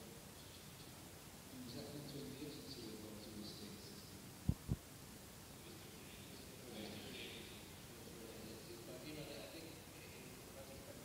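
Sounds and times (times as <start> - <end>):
man talking into microphone: 1.5 - 4.2.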